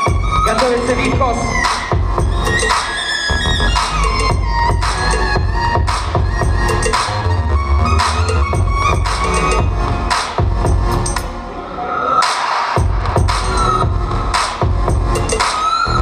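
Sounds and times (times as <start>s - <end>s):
dance music with heavy bass: 0.0s - 11.4s.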